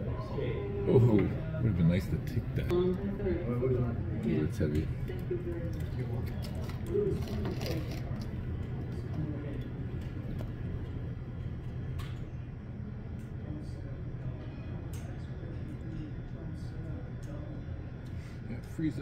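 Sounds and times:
faint voices in a hall: 0.0 - 19.0
steady low hum: 0.0 - 19.0.

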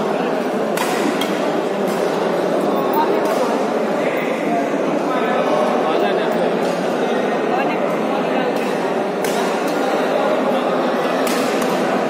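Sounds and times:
murmur of spectators: 0.0 - 12.0
racket hitting shuttlecock: 11.2 - 11.8.

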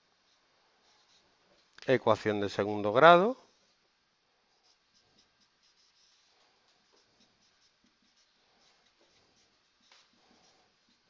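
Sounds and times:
marker pen writing on whiteboard: 0.1 - 1.7, 4.5 - 11.0.

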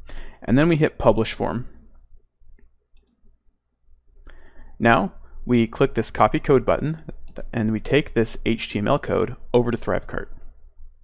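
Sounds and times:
low room hum: 0.0 - 11.0
computer mouse clicks: 1.9 - 3.4.

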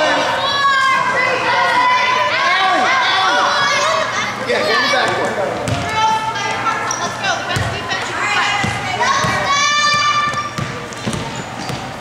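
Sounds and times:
girls chattering and calling: 0.0 - 11.0.

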